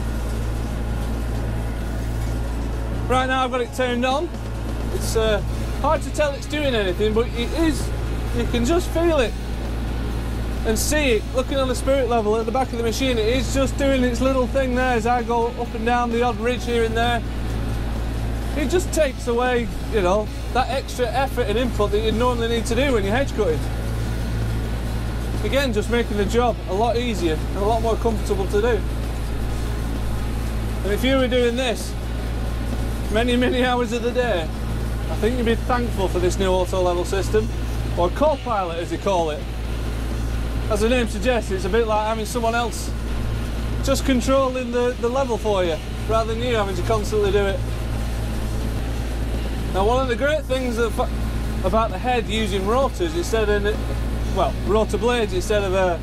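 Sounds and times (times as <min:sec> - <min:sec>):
tractor engine low drone: 0:00.0 - 0:56.0.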